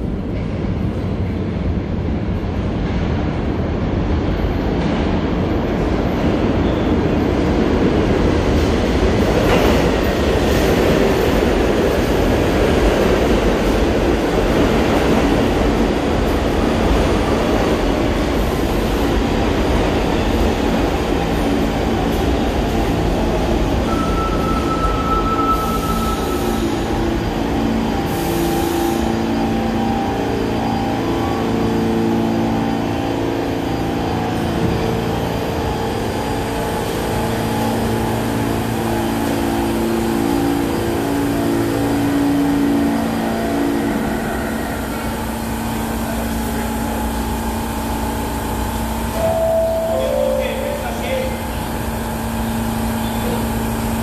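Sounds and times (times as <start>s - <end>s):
train wheels rumbling on rail: 0.0s - 54.0s
train whining tones: 22.8s - 54.0s.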